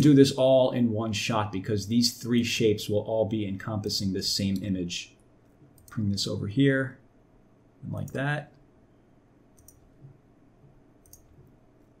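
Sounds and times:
faint computer mouse clicks: 9.6s - 9.9s, 11.0s - 11.5s.

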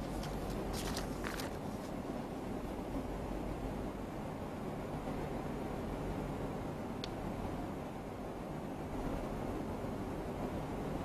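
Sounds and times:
low room hum and hiss: 0.0s - 11.0s.

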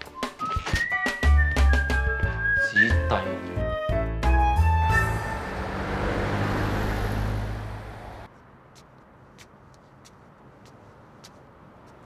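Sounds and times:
road traffic rush: 4.5s - 12.0s.

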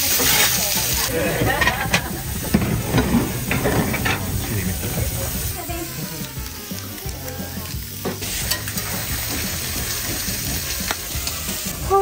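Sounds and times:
faint voices: 0.0s - 7.8s
food sizzling: 0.0s - 12.0s.

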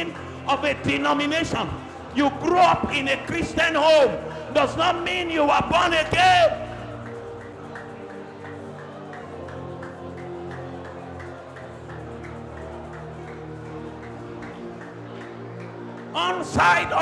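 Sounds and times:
sustained chords music: 0.0s - 17.0s.

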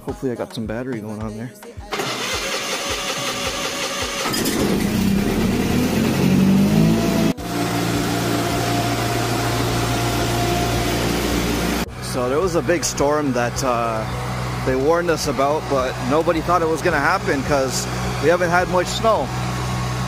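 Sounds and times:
engine starter cranking: 1.9s - 6.4s
tractor engine running: 1.9s - 20.0s.

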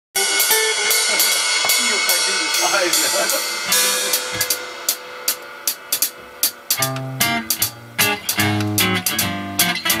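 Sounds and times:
drum kit with cymbals: 0.2s - 10.0s
electric guitar: 0.2s - 10.0s.

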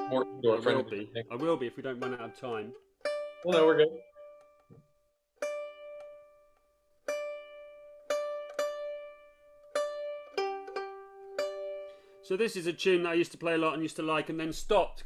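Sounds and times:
fiddle strings plucked: 0.0s - 15.0s.

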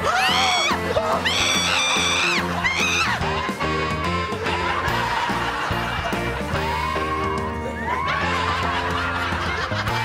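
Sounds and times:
woman shrieking: 0.0s - 3.2s
upbeat background music: 0.0s - 10.0s.

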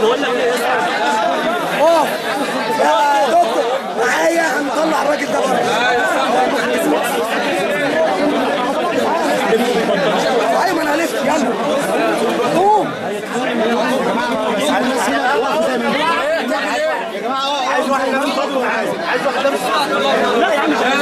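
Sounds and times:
crowd of people talking: 0.0s - 21.0s.

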